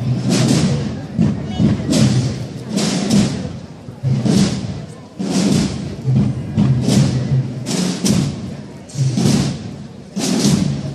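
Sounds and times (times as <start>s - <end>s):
drums beating slow march: 0.0s - 10.9s.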